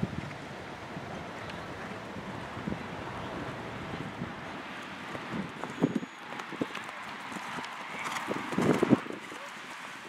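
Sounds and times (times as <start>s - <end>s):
horse hooves thudding on turf: 4.8s - 9.9s.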